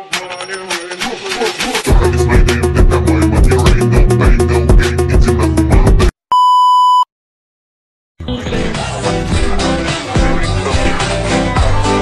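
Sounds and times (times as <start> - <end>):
music: 0.0 - 6.1, 8.2 - 12.0
steady electronic beep: 6.3 - 7.1.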